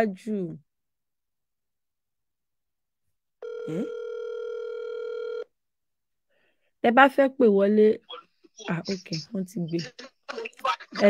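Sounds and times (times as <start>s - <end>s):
telephone line tone: 3.4s - 5.5s
person saying eh: 8.6s - 11.0s.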